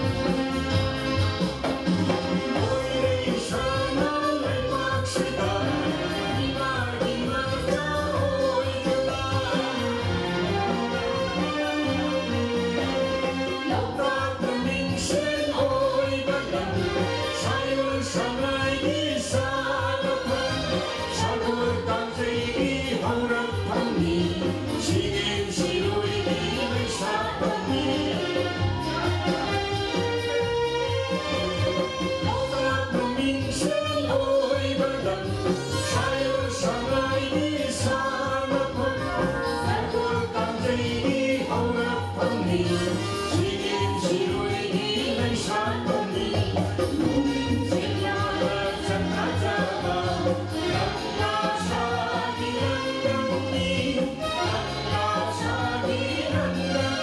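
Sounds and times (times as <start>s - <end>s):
live pop band with keyboard: 0.0s - 57.0s
female vocals singing: 2.6s - 12.0s, 13.3s - 29.6s, 31.9s - 57.0s.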